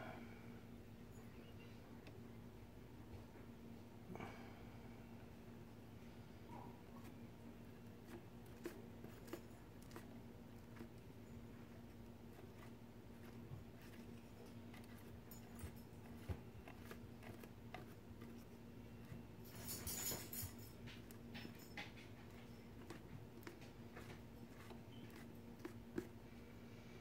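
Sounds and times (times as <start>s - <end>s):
steady low hum: 0.0s - 27.0s
brush dabbing and scraping paste: 6.8s - 19.4s, 22.2s - 26.5s.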